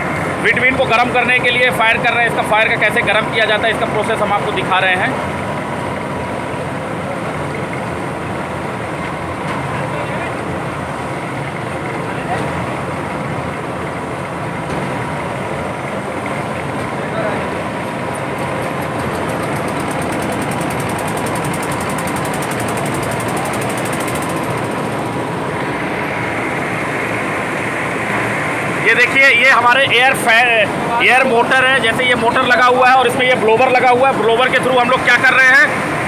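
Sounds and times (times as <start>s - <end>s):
burner air blower running: 0.0s - 36.0s
faint steady whine: 0.0s - 36.0s.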